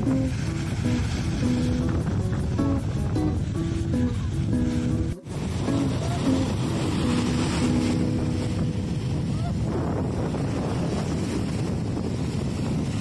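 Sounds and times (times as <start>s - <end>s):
breaking surf: 0.0s - 13.0s
wind buffeting microphone: 0.0s - 13.0s.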